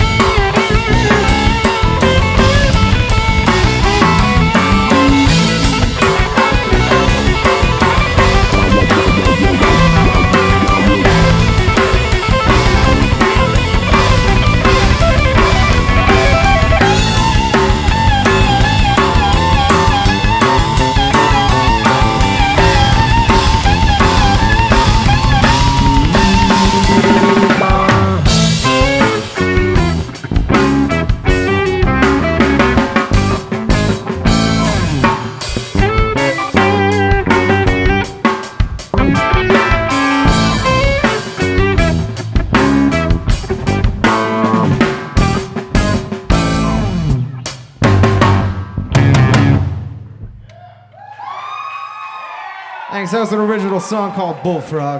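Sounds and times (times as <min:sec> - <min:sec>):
blues rock band playing: 0:00.0 - 0:50.5
busy drumming: 0:00.0 - 0:50.5.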